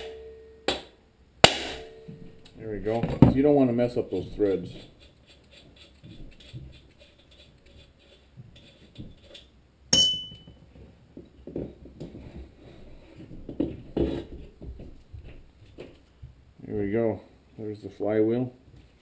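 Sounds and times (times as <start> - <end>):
sharp metallic clank: 0.0 - 2.4, 9.9 - 10.6
faint metal scraping: 1.8 - 10.8.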